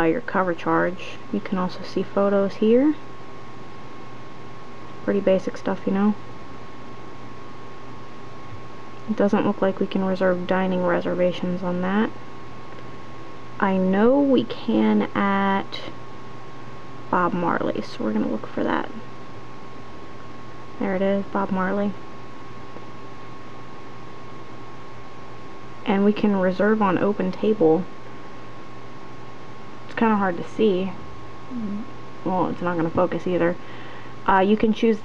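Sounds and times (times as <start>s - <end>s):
faint high hum: 0.0s - 35.0s
room tone hiss: 0.0s - 35.0s
faint high tone: 31.5s - 32.4s.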